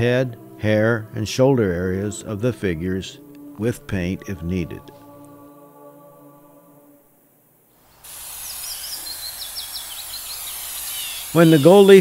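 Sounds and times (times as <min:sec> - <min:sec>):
steady high hiss: 0:06.2 - 0:12.0
birds chirping: 0:07.9 - 0:12.0.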